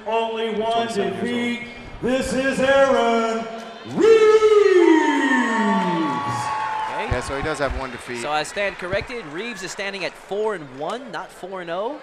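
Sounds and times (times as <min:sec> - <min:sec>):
crowd cheering: 0:02.8 - 0:12.0
high whoop: 0:04.0 - 0:07.0.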